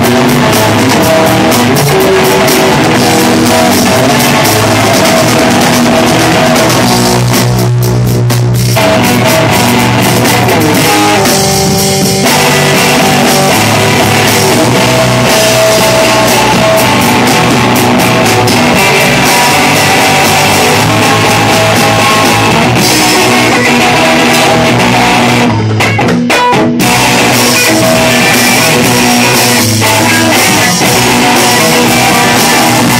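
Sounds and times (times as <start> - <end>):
live rock band playing: 0.0 - 32.9.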